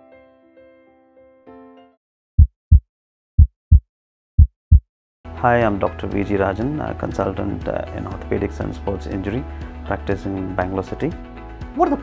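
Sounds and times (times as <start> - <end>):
heartbeat double thump: 2.4 - 4.9.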